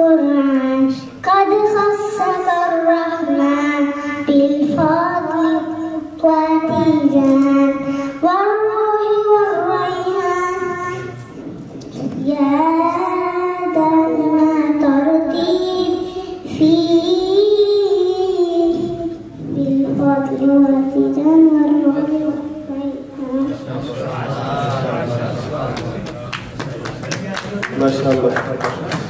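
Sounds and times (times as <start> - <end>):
girl chanting into microphone: 0.0 - 11.3, 11.9 - 23.6.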